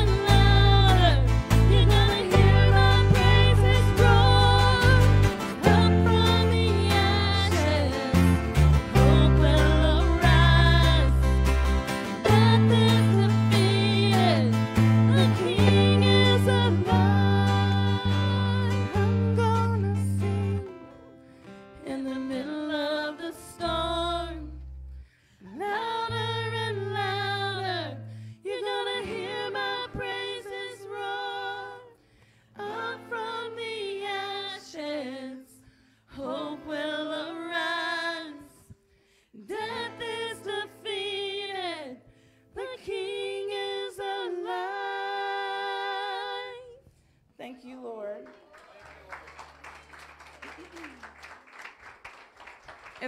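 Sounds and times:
women singing into microphones: 0:00.0 - 0:11.4, 0:12.1 - 0:20.7, 0:21.8 - 0:24.6, 0:25.4 - 0:38.8, 0:39.4 - 0:46.9
low bass notes: 0:00.0 - 0:20.6
acoustic guitar: 0:00.0 - 0:48.2.

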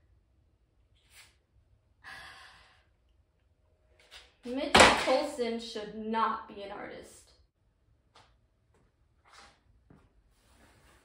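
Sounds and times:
woman breathing: 0:02.0 - 0:03.0.

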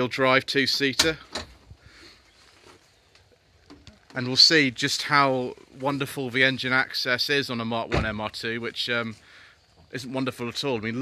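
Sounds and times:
faint rustling: 0:01.1 - 0:06.8.

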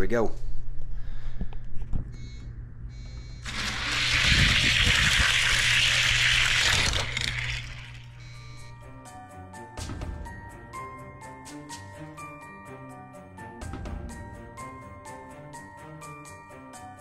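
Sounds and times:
steady low hum: 0:00.3 - 0:06.7.

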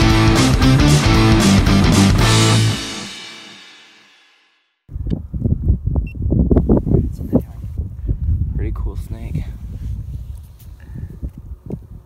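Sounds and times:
electric guitar music: 0:00.0 - 0:04.0
wind rumbling on microphone: 0:04.9 - 0:12.0.

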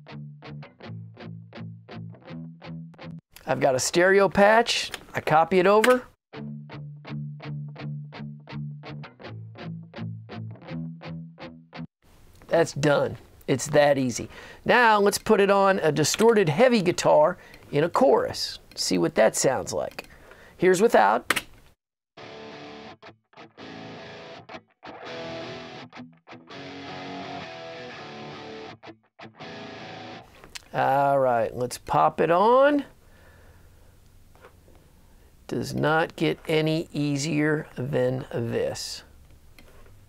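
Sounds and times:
electric guitar chugging chords: 0:22.2 - 0:30.2
distorted heavy electric guitars: 0:26.5 - 0:28.8, 0:29.4 - 0:30.2.

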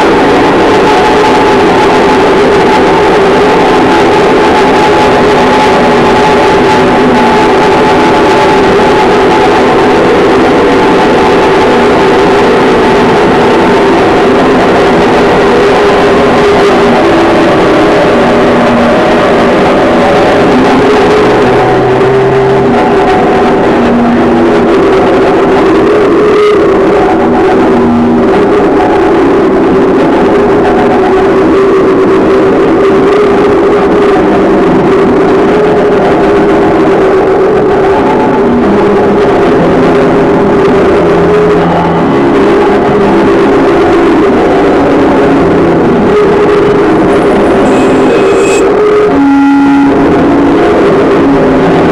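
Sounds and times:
steady droning tones: 0:00.0 - 0:51.9
wall of dense noise: 0:00.0 - 0:51.9
held low pitches: 0:00.1 - 0:33.5, 0:38.5 - 0:51.9.

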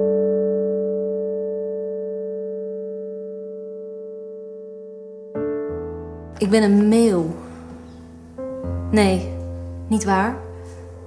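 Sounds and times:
piano chord: 0:00.0 - 0:11.0.

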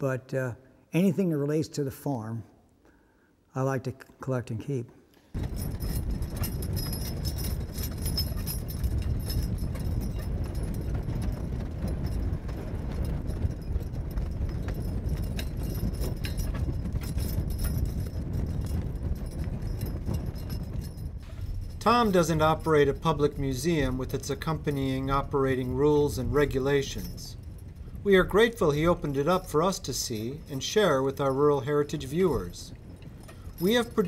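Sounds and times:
hoofbeats: 0:05.4 - 0:34.0.

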